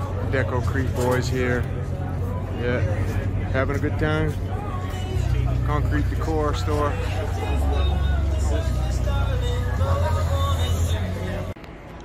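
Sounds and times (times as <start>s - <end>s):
people talking at once: 0.0s - 11.6s.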